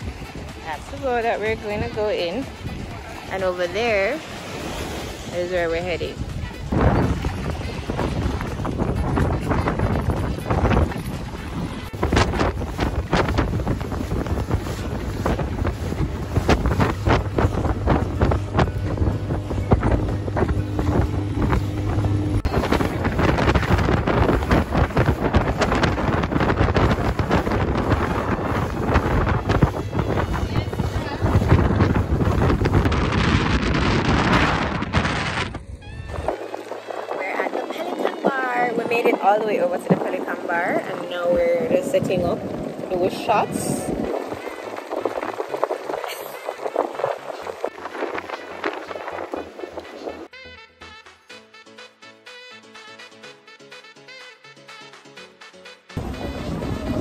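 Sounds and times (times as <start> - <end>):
motorboat running fast: 0.0 - 50.3, 51.8 - 57.0
water splashing against hull: 0.0 - 50.3, 56.0 - 57.0
wind buffeting microphone: 0.0 - 50.3, 56.0 - 57.0.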